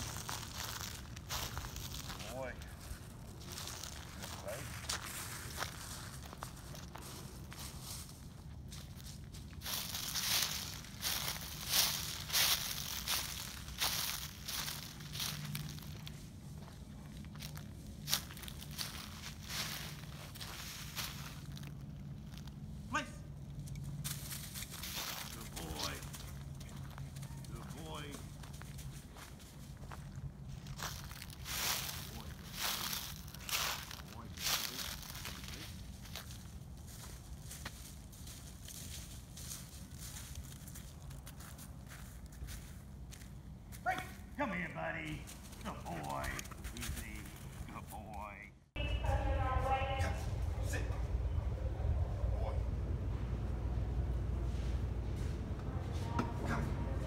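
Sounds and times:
footsteps crunching dry leaves: 0.0s - 44.6s.

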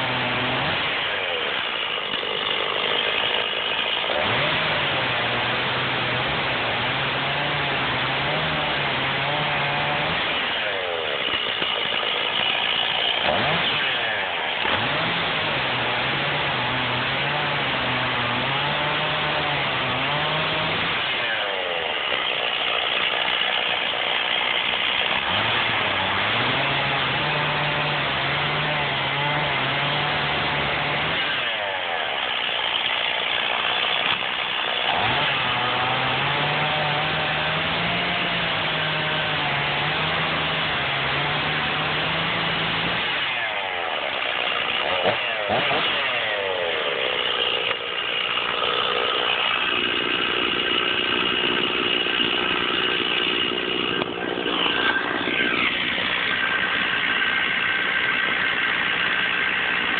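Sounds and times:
chainsaw cutting a log: 0.0s - 59.9s.

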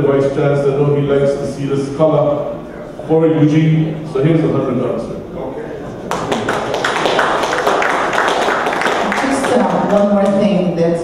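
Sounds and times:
people applauding: 6.0s - 10.6s.

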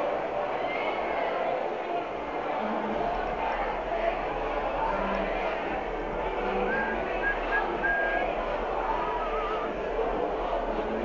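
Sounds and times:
street background noise at night: 0.0s - 11.0s.

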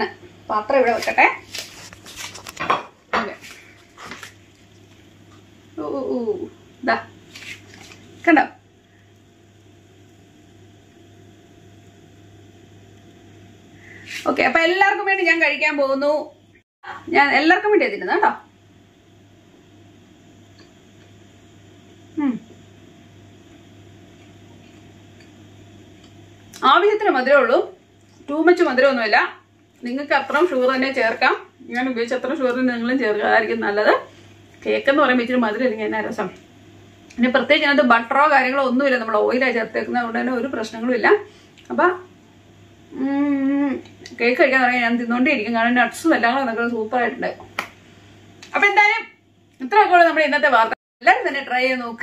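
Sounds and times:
woman speaking: 0.0s - 1.6s, 3.1s - 3.5s, 5.8s - 7.1s, 8.2s - 8.6s, 14.1s - 18.5s, 22.2s - 22.5s, 26.6s - 36.4s, 37.2s - 42.1s, 42.9s - 47.5s, 48.5s - 52.0s
low room hum: 0.0s - 52.0s.

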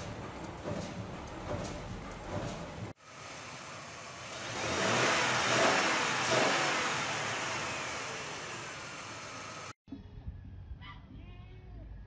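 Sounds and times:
truck engine revving: 0.0s - 9.8s.

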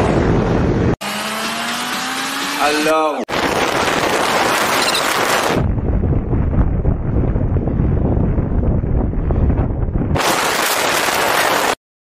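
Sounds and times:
wind rushing over microphone: 0.0s - 1.0s, 3.2s - 11.8s.

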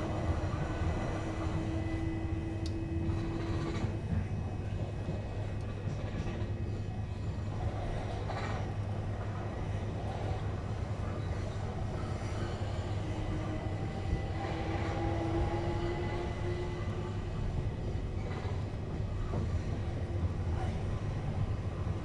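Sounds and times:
faint train whine: 0.0s - 22.0s
train wheels rumbling on track: 0.0s - 22.0s.

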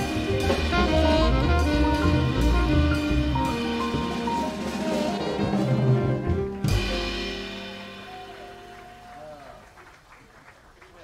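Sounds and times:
jazz band closing chord: 0.0s - 9.1s.

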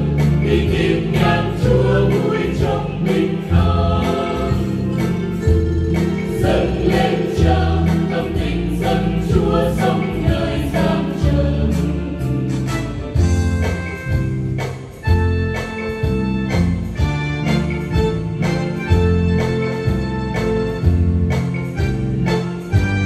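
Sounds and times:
church choir singing a hymn: 0.0s - 5.2s, 6.3s - 12.5s
instrumental accompaniment: 0.0s - 23.0s.

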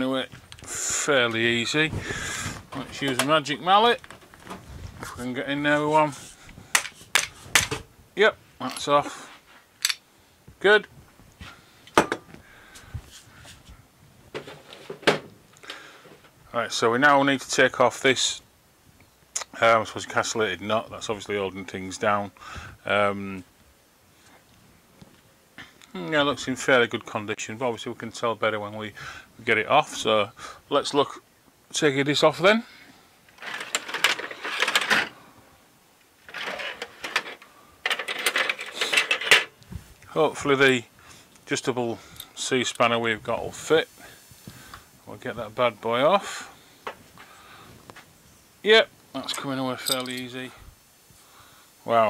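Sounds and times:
tools knocking and clattering: 6.7s - 7.9s, 49.3s - 50.3s
metal parts clacking on workbench: 36.3s - 39.5s, 49.3s - 50.4s
metal hand tools clinking: 49.2s - 50.4s.

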